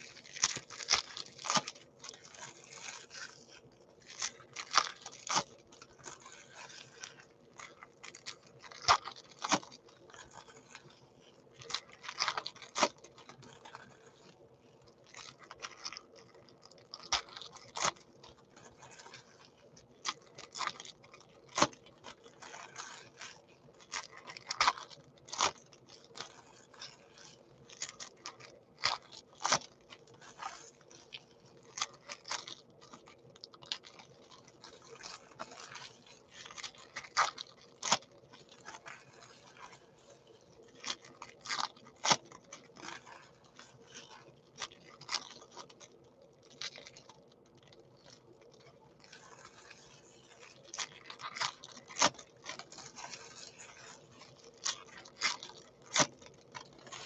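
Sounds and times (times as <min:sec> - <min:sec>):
foil wrappers crinkling: 0:00.0 - 0:57.0.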